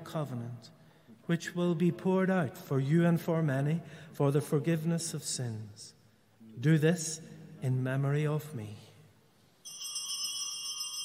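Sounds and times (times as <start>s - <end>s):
altar bells jingling: 9.6s - 11.0s.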